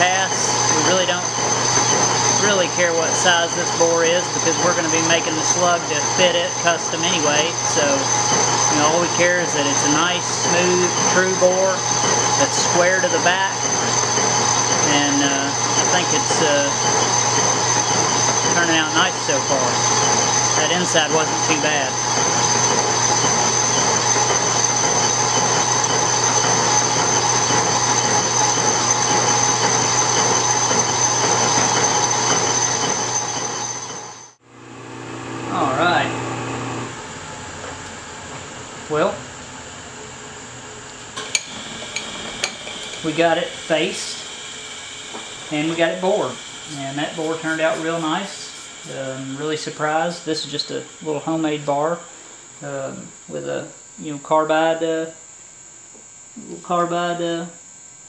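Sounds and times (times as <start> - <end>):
metal lathe whining: 0.0 - 52.5.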